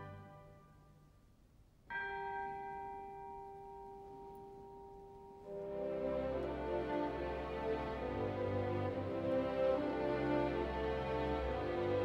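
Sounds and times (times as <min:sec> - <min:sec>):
orchestra: 0:00.0 - 0:01.2, 0:01.9 - 0:12.0.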